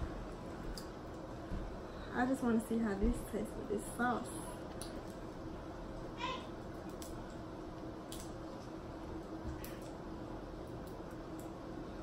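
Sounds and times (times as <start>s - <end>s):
low steady room hum: 0.0s - 12.0s.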